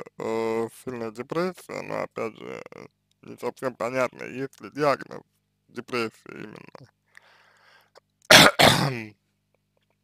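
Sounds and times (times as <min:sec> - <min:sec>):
man clearing his throat: 0:08.3 - 0:09.1.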